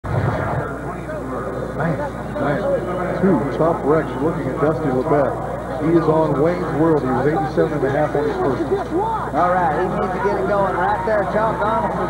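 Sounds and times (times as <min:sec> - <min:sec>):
steady low hum: 0:00.0 - 0:12.0
television commentary talk: 0:00.4 - 0:12.0.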